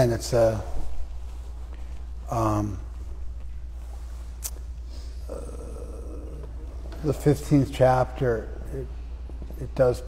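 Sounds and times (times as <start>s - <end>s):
low steady hum: 0.0s - 10.0s
man saying uh: 2.3s - 2.9s, 5.2s - 8.9s.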